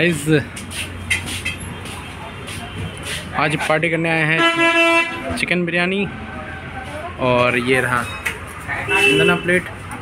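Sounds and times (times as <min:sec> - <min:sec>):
street traffic din: 0:00.0 - 0:10.0.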